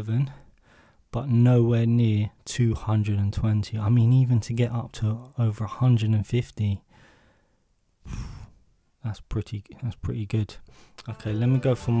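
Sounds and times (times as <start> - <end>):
man sighing: 8.1 - 8.6.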